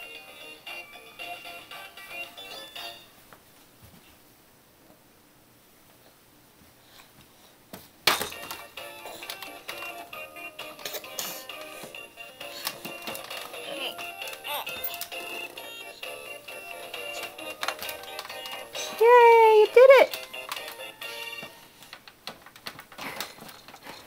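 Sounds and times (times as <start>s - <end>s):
plastic clicks and rattles: 8.1s - 10.0s, 12.5s - 15.6s, 16.9s - 19.0s, 20.1s - 21.0s, 21.8s - 24.0s.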